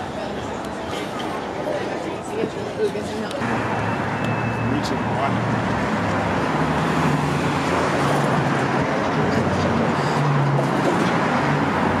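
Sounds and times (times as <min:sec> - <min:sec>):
cars passing on street: 0:00.0 - 0:12.0.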